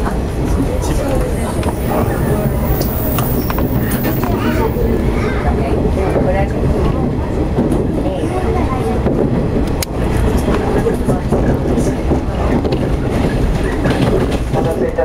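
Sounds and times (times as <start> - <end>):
train wheels rumbling on rails: 0.0 - 15.0.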